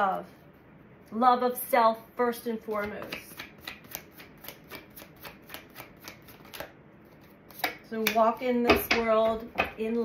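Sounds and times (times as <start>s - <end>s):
cards being shuffled: 2.7s - 7.8s.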